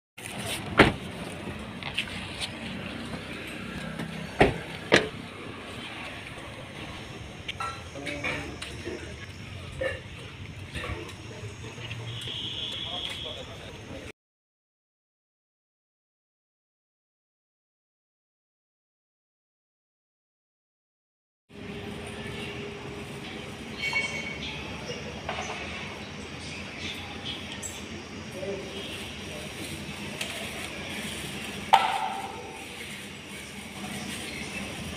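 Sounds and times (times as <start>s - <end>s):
crowd voices and movement: 0.2s - 14.1s, 21.6s - 34.9s
loud sharp knock: 31.7s - 32.5s.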